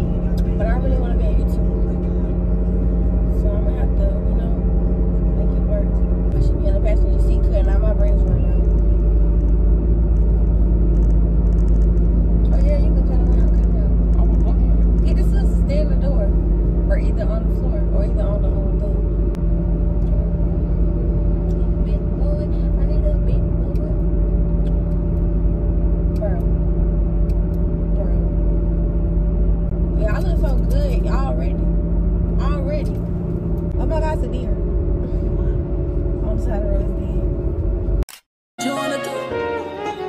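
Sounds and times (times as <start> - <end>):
car road and engine rumble: 0.0 - 38.2.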